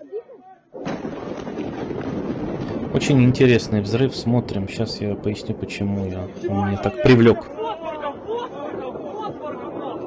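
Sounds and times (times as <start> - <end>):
loud explosion blast: 0.8 - 10.0
faint voices: 2.7 - 10.0.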